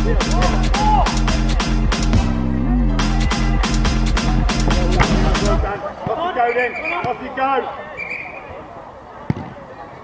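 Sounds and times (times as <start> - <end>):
football kicked thud: 5.0 - 6.2.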